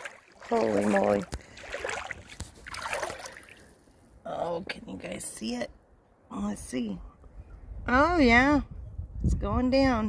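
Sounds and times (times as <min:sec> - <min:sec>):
water sloshing around wading legs: 0:00.0 - 0:04.2.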